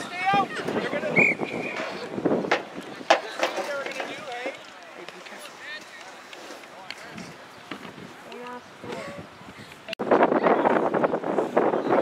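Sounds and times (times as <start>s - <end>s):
shouts and voices: 0.0s - 2.2s.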